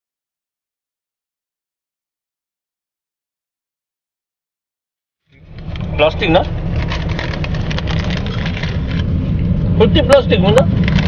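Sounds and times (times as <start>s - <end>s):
car engine and tyres from inside: 5.3s - 11.0s
plastic snack packets crinkling: 6.8s - 9.0s.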